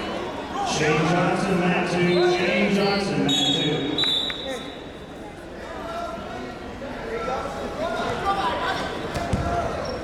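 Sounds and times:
crowd chatter echoing: 0.0s - 10.0s.

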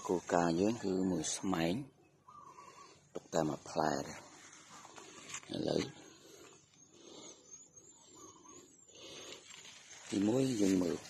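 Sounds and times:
faint high-pitched chirps: 0.9s - 3.1s, 5.8s - 11.0s.

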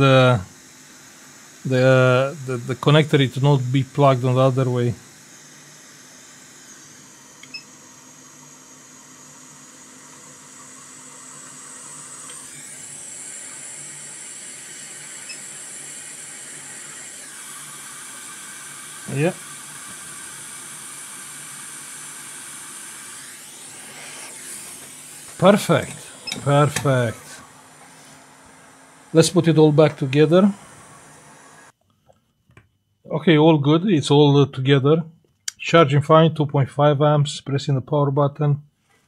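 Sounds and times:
hot-air gun hissing: 0.0s - 31.8s.

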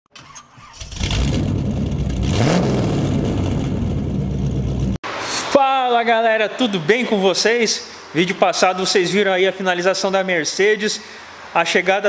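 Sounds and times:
car engine starting and running: 0.2s - 5.1s.

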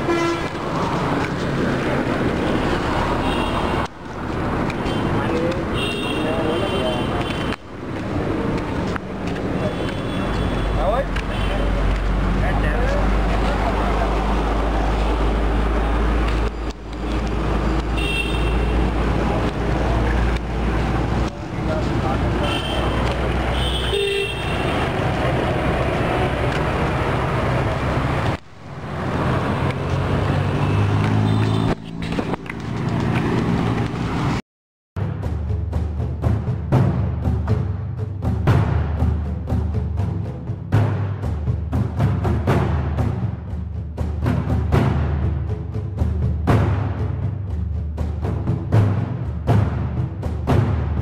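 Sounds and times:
traffic rumble: 0.0s - 34.4s
car horn toots: 18.0s - 18.9s, 22.4s - 24.8s.

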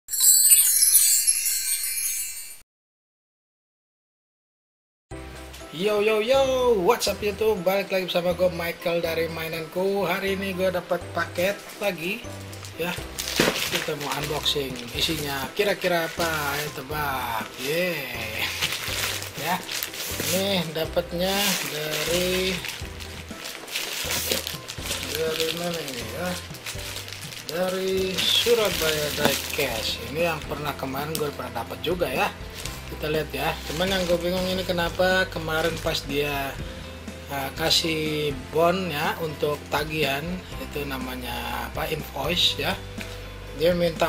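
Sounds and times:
sparkling chime shimmer: 0.1s - 2.6s
background music: 5.1s - 44.0s
plastic wrapping rustling: 11.4s - 36.6s.

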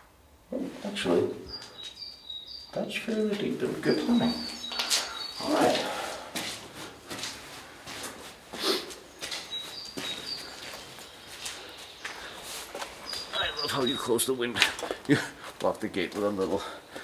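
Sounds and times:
small birds chirping: 0.5s - 17.0s
footsteps walking: 2.7s - 17.0s.

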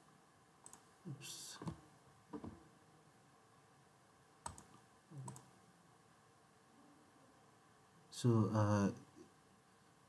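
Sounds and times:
computer mouse clicks: 0.6s - 0.9s, 4.4s - 5.5s.

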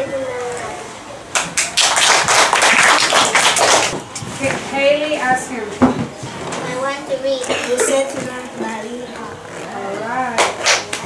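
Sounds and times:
child speaking: 6.6s - 10.0s.

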